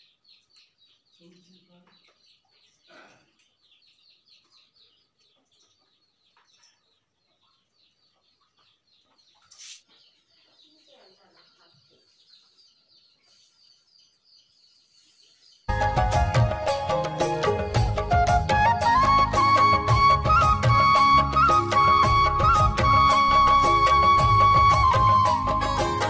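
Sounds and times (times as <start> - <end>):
small birds chirping: 0.0 - 15.9
loud music: 15.7 - 26.0.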